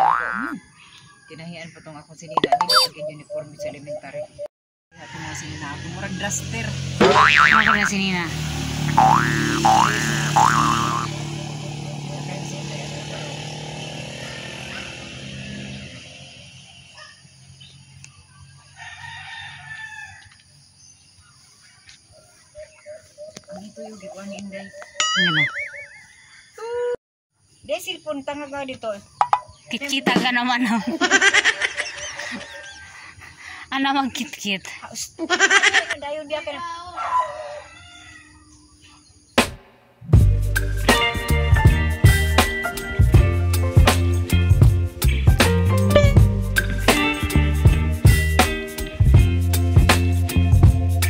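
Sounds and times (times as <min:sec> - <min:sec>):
cartoon boing effect: 0:00.0 - 0:00.6, 0:02.4 - 0:03.0, 0:07.0 - 0:07.9, 0:08.9 - 0:11.1, 0:25.0 - 0:25.9
faint outdoor ambience: 0:00.0 - 0:40.2
chicken calling: 0:02.4 - 0:04.5, 0:22.5 - 0:26.6
rooster crowing: 0:05.0 - 0:06.6, 0:18.3 - 0:20.4, 0:37.0 - 0:38.6.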